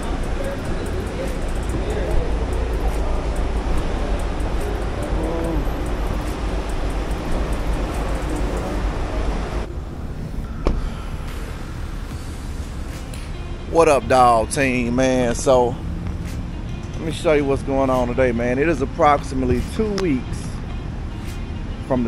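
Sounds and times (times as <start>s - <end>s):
cars passing: 0.0s - 22.0s
traffic rumble: 0.0s - 22.0s
wind: 0.0s - 22.0s.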